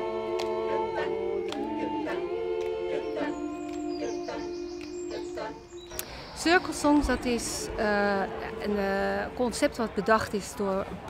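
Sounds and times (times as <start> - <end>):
group singing a cappella: 0.0 - 9.3.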